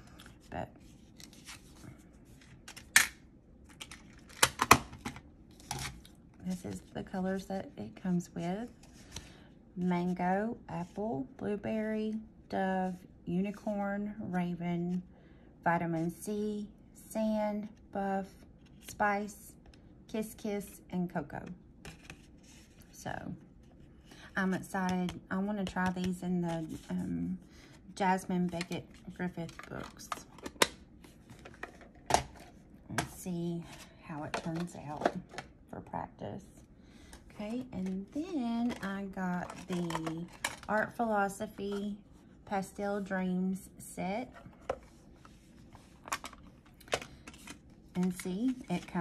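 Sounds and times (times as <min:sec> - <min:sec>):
paper card rustling: 0:00.0 - 0:03.0.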